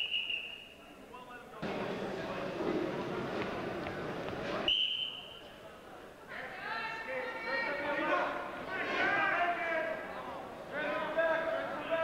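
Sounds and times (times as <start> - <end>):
referee's whistle blast: 0.0 - 0.8, 4.6 - 5.4
gym crowd noise: 0.0 - 12.0.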